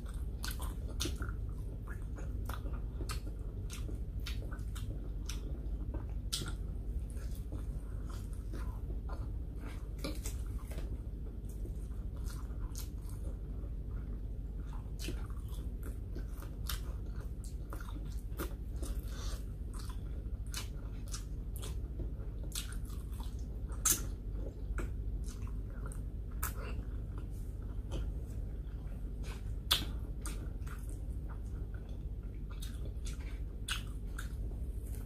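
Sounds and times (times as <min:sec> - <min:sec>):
person chewing food: 0:00.0 - 0:35.0
steady low hum: 0:00.0 - 0:35.0
wet mouth clicks and smacks: 0:29.7 - 0:30.9.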